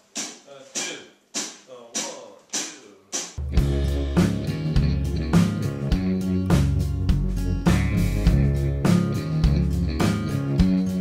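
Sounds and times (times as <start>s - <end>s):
drum kit beat: 0.0s - 11.0s
band with heavy bass: 3.4s - 11.0s.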